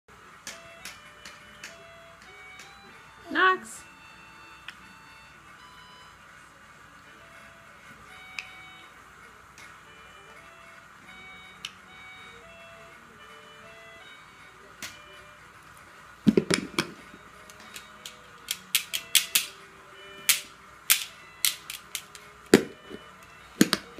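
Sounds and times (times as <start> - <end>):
faint steady tones: 0.1 - 23.9
plastic toys clicking together: 17.4 - 19.6, 20.2 - 22.6.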